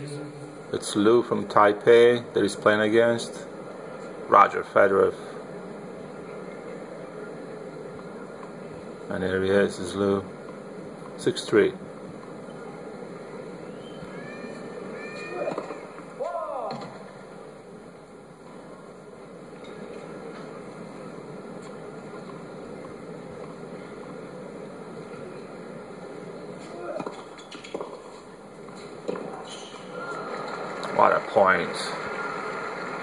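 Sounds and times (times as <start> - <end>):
television background hiss: 0.0 - 33.0
faint voices: 3.4 - 17.6, 19.6 - 27.4.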